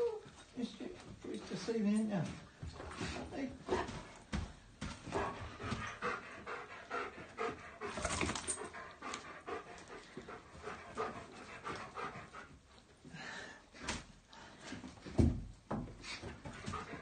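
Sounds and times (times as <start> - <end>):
dog panting fast: 3.0 - 4.3, 5.0 - 12.8, 16.1 - 17.0.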